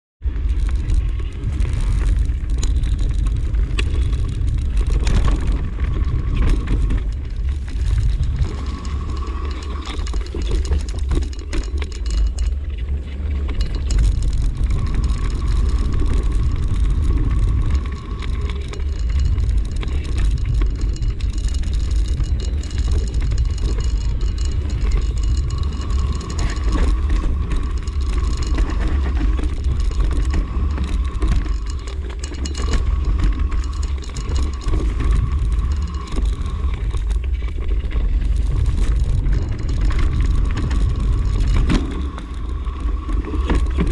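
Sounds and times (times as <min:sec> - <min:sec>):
bike rattling and knocking: 0:00.2 - 0:43.9
wind rumble on microphone: 0:00.2 - 0:43.9.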